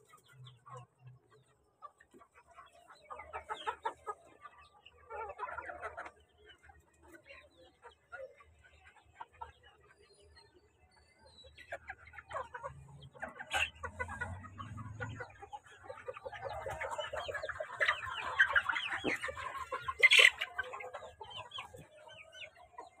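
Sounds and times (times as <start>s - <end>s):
chickens clucking: 0.0s - 23.0s.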